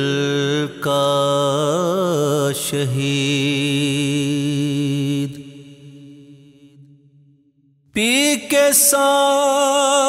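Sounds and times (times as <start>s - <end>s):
man singing with vibrato: 0.0s - 6.8s, 7.9s - 10.0s.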